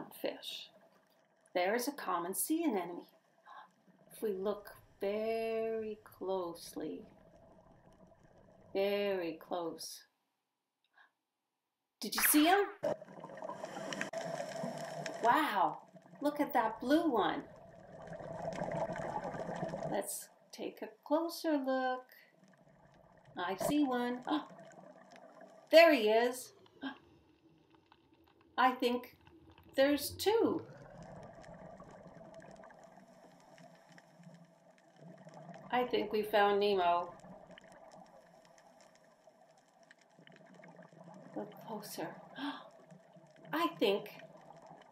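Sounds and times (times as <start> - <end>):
faint underwater clicks: 12.2 - 20.4, 22.2 - 44.9
underwater bubbling hiss: 13.0 - 15.2, 17.6 - 19.9.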